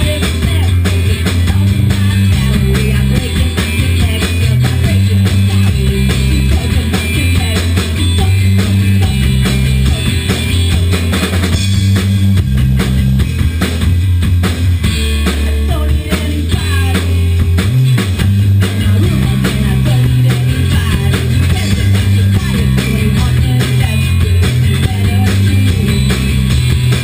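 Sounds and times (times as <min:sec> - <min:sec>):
bass guitar: 0:00.0 - 0:27.0
drum kit: 0:00.0 - 0:27.0
electric guitars: 0:00.0 - 0:27.0.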